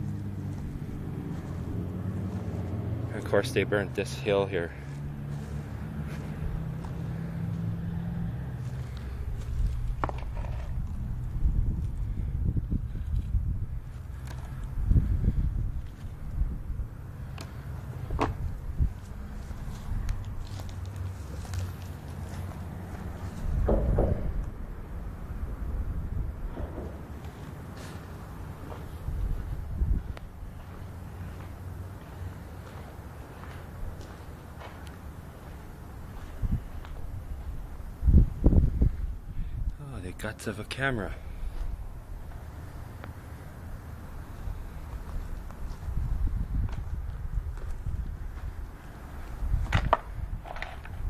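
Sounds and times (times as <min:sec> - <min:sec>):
footsteps on dry grass and dirt: 0:00.0 - 0:03.4, 0:04.2 - 0:07.7, 0:08.5 - 0:12.1, 0:17.5 - 0:23.6, 0:26.9 - 0:39.0, 0:44.2 - 0:49.7
low traffic rumble: 0:00.0 - 0:51.0.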